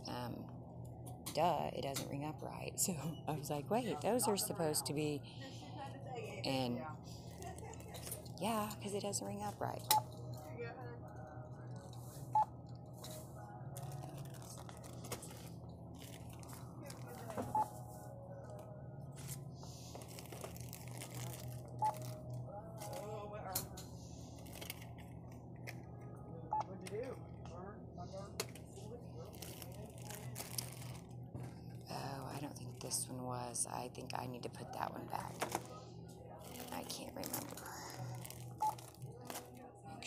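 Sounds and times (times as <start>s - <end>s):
low store hum: 0.0s - 40.0s
packaging rustling: 19.9s - 22.2s, 29.2s - 31.1s, 36.4s - 39.5s
barcode scanner beeps: 21.8s - 22.0s.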